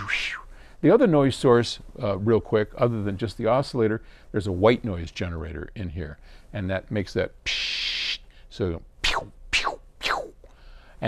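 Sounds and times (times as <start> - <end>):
man vocalizing synth sweeps: 0.0 - 0.5, 9.0 - 10.4.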